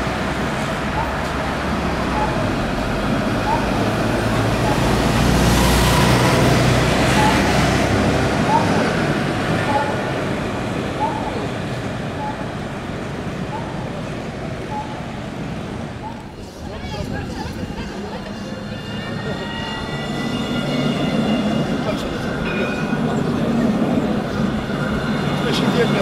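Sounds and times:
bus engine rumble: 0.0 - 26.0
road traffic noise: 0.0 - 26.0.

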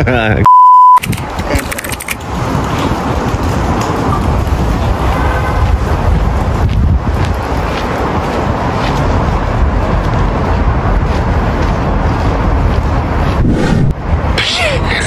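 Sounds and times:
wind buffeting microphone: 1.0 - 15.0.

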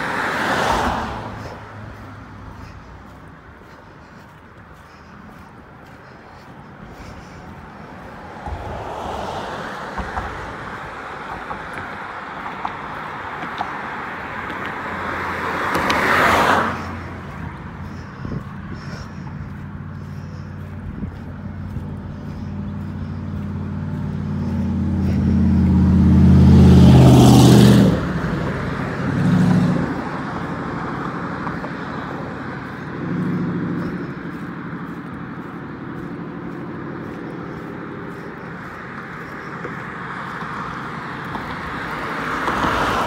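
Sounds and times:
smaller vehicles passing: 0.0 - 43.0
steady traffic hum: 0.0 - 43.0
vehicle passing closely: 0.0 - 43.0.

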